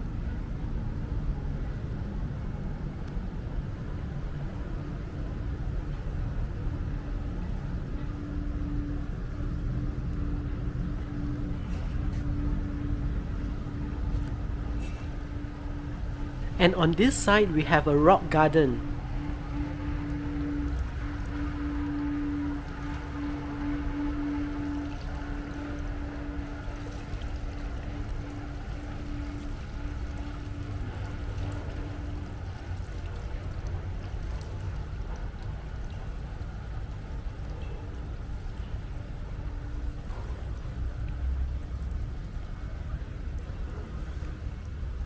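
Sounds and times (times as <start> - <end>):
steady humming tone: 0.0 - 45.0.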